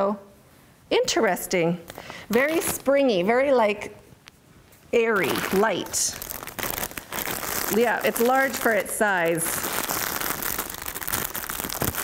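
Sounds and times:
plastic bag crinkling: 0:02.0 - 0:03.0, 0:05.0 - 0:12.0.

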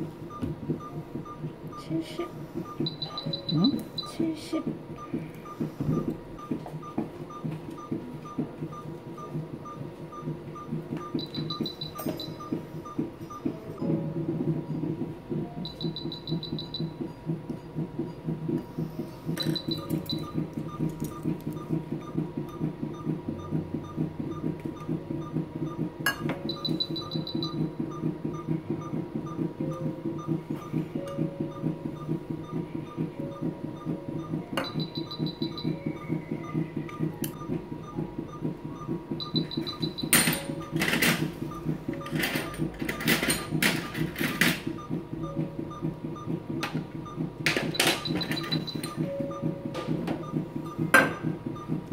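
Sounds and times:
low hum of equipment: 0:00.0 - 0:51.9
monitor beeping quickly: 0:00.0 - 0:51.9
higher beeps: 0:00.3 - 0:14.0, 0:15.6 - 0:17.2, 0:19.4 - 0:46.4, 0:47.0 - 0:51.9.

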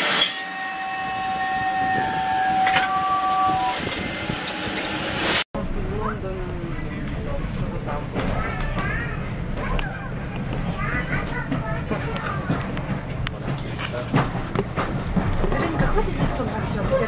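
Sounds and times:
railway carriage rumble: 0:00.0 - 0:17.0.

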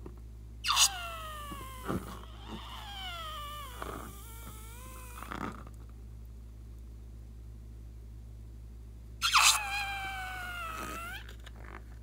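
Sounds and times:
balloon neck squealing: 0:00.6 - 0:05.6, 0:09.2 - 0:11.5.

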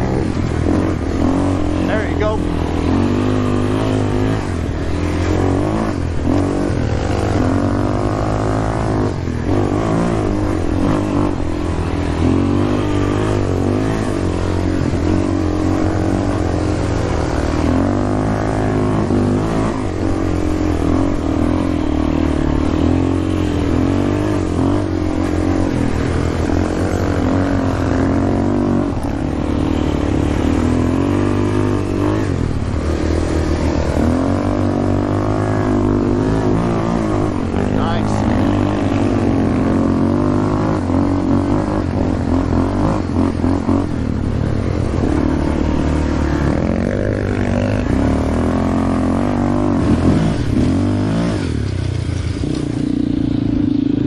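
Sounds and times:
quad engine revving: 0:00.0 - 0:54.0.

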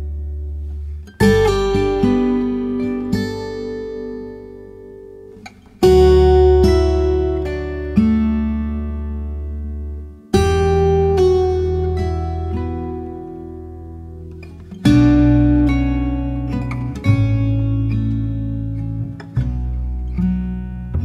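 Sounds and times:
acoustic guitar chords: 0:00.0 - 0:21.0.

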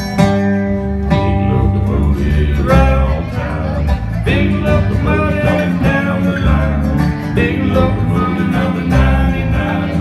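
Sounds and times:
acoustic guitar strumming: 0:00.0 - 0:10.0
electric bass guitar: 0:00.0 - 0:10.0.

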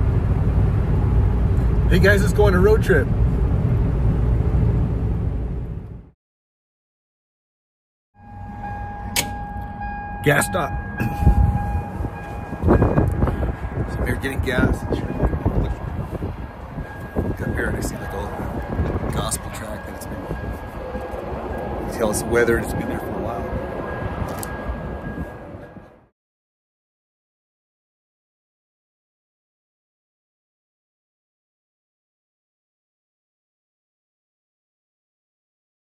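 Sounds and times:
steady low rumble: 0:00.0 - 0:06.2, 0:08.2 - 0:26.1
faint steady tone: 0:08.2 - 0:16.0
thin steady whine: 0:08.2 - 0:26.0.

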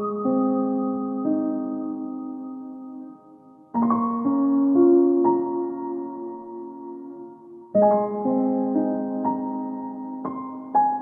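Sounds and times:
slow soft piano music: 0:00.0 - 0:11.0.

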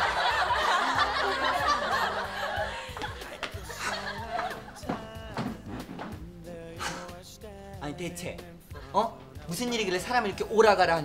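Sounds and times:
crowd laughing: 0:00.0 - 0:05.6
background music: 0:00.0 - 0:11.0.

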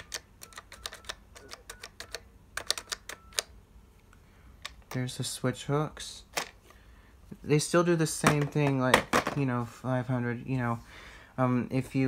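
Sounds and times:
keypad button clicks: 0:00.0 - 0:03.5.

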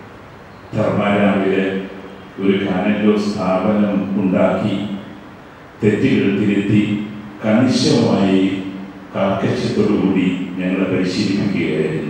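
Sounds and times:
man speaking: 0:00.7 - 0:05.1, 0:05.8 - 0:12.0.

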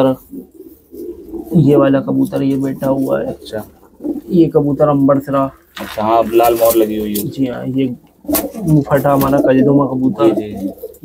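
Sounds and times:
man talking indistinctly: 0:00.0 - 0:00.2, 0:01.5 - 0:03.7, 0:04.3 - 0:08.0, 0:08.6 - 0:10.8
pigeons cooing: 0:00.0 - 0:11.0.

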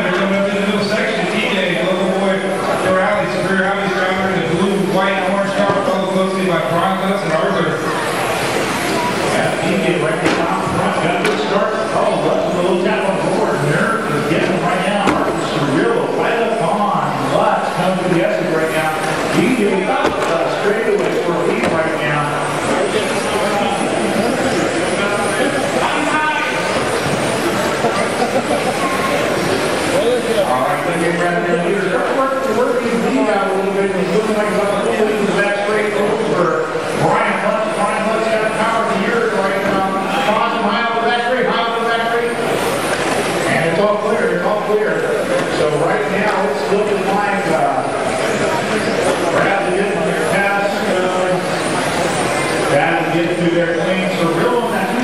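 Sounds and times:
voices: 0:00.0 - 0:55.0
electric toy cars whining: 0:40.9 - 0:55.0.

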